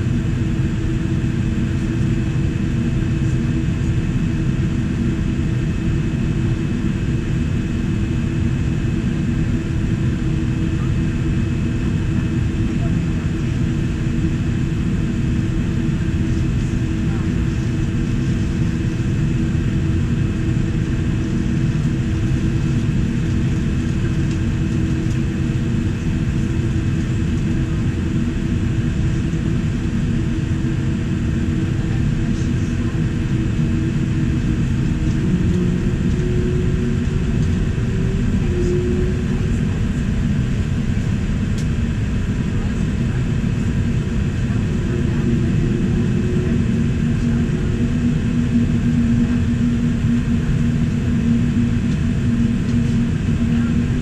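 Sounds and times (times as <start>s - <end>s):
aircraft cabin rumble: 0.0s - 54.0s.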